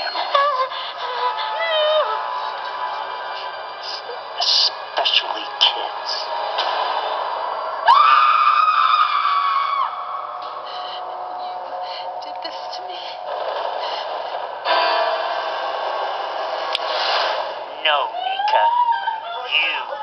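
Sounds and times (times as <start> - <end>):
tense film score: 0.0 - 20.0
woman screaming: 7.9 - 10.1, 18.1 - 19.9.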